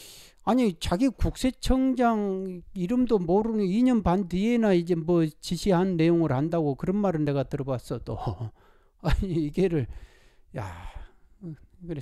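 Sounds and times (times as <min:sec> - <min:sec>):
man murmuring: 0:08.1 - 0:09.9, 0:10.6 - 0:12.0
man sighing into microphone: 0:09.9 - 0:11.8.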